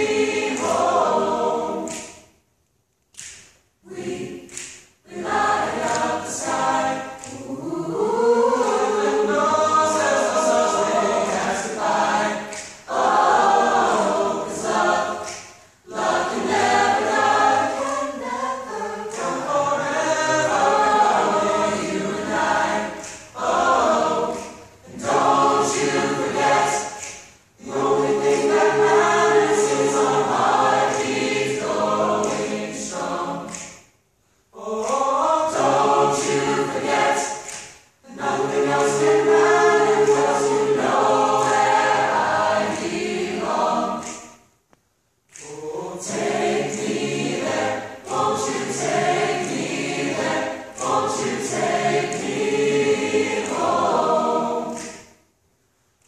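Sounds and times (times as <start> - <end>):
mixed choir singing a cappella: 0.0 - 2.4, 3.2 - 44.6, 45.3 - 55.3.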